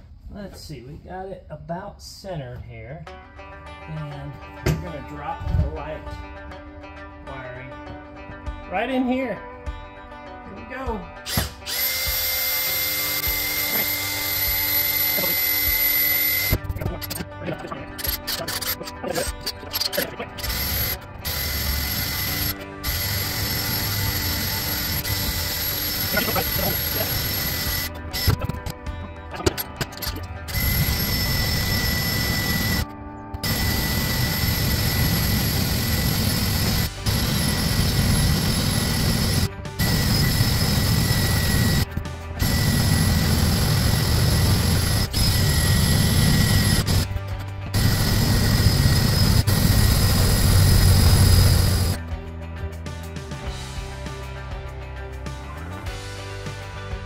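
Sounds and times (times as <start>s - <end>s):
cordless drill drilling into metal: 11.3s - 16.6s, 20.4s - 28.4s, 30.5s - 32.8s, 33.4s - 47.1s, 47.8s - 52.0s.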